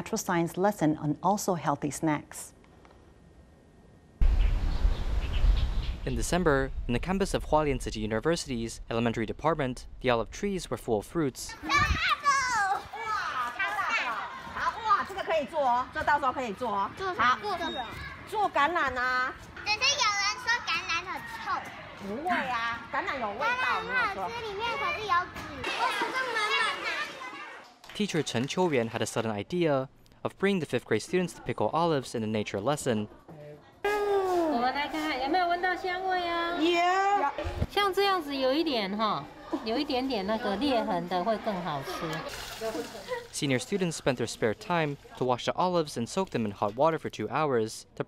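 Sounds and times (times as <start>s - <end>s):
bird chirps: 4.2s - 6.1s, 17.5s - 18.0s
steady low rumble: 4.2s - 11.5s
young children speaking: 11.5s - 15.2s, 19.6s - 21.7s, 23.3s - 27.6s.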